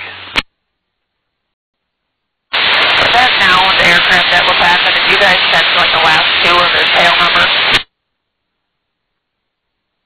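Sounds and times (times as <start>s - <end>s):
radio static hiss: 0.0s - 0.5s, 2.5s - 8.0s.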